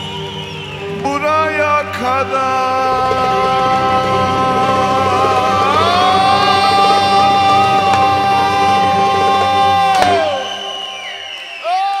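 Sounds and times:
audience applauding: 0.0 - 12.0.

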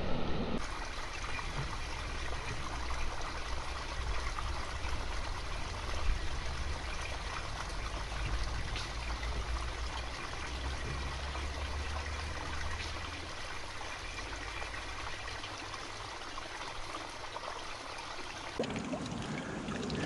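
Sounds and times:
low rumble: 0.0 - 0.6
small stream trickling: 0.6 - 20.0.

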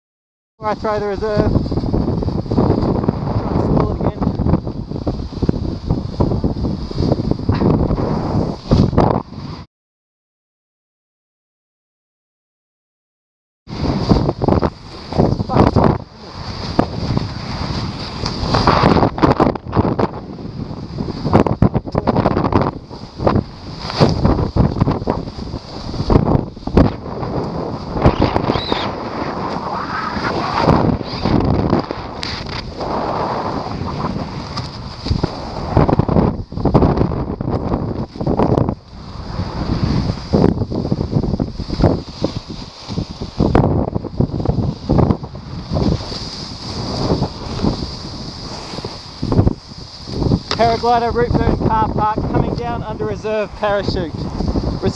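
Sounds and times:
wind buffeting microphone: 0.6 - 9.7, 13.7 - 54.9.

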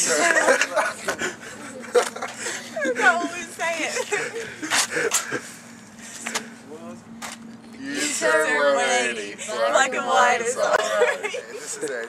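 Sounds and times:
people laughing and giggling: 0.0 - 5.6, 10.5 - 12.0.

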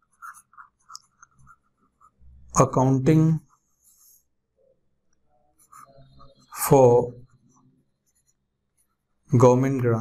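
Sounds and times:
stylus scratching on tablet: 0.0 - 4.7, 5.4 - 9.5.

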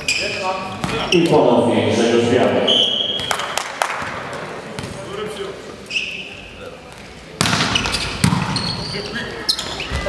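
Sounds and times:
ball bouncing on hall floor: 0.7 - 1.4, 3.1 - 5.2, 6.9 - 8.9
referee's whistle blast: 2.6 - 3.3.

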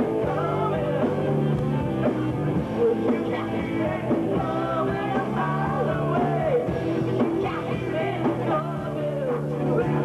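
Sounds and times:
live rock band playing: 0.0 - 10.0
woman singing: 2.8 - 6.7, 7.4 - 9.9.

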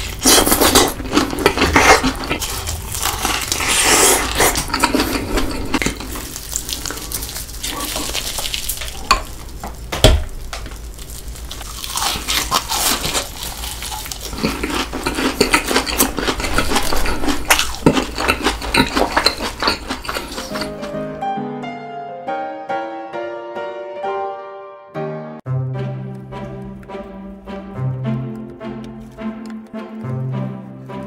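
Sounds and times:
crunching and chewing fried chicken: 0.0 - 21.0.

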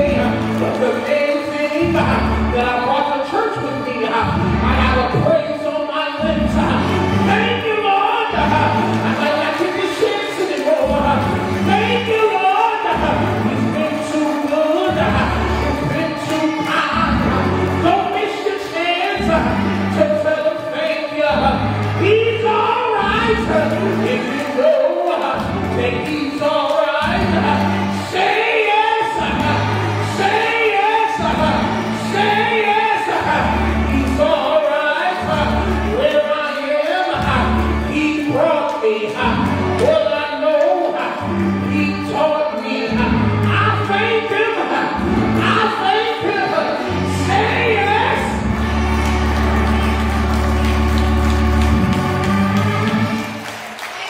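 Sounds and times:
instrumental accompaniment: 0.0 - 54.0
held low bass notes: 4.2 - 5.1, 12.9 - 14.0, 14.9 - 16.0, 16.9 - 18.0, 19.2 - 20.3, 21.3 - 24.3, 29.2 - 30.5, 31.2 - 32.5, 45.0 - 45.7
deep sustained bass notes: 21.3 - 24.2, 45.0 - 45.6
gospel choir singing: 27.0 - 34.3, 46.2 - 54.0.

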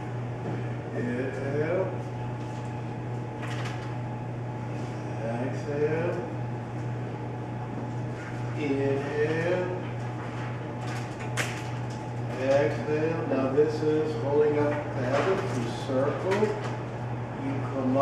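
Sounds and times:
steady low hum: 0.0 - 18.0.

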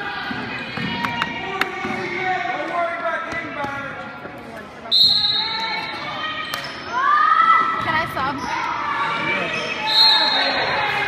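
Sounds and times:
voices echoing in gym hall: 0.0 - 11.0.

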